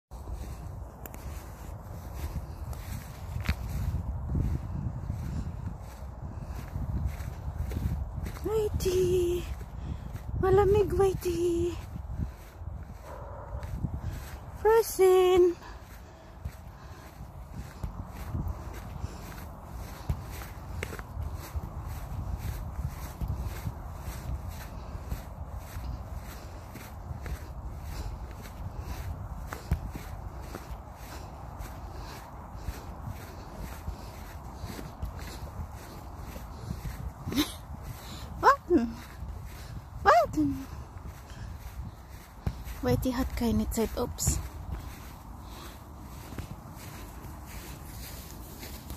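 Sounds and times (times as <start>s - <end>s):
footsteps on frosted grass: 0.1s - 48.9s.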